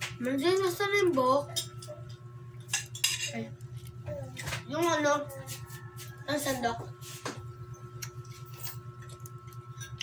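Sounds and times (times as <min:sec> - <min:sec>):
cutlery clinking against a plate: 0:01.5 - 0:03.4.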